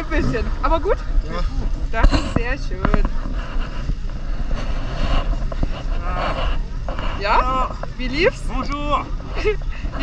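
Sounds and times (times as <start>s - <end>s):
faint voices: 0.0s - 10.0s
low background rumble: 0.0s - 10.0s.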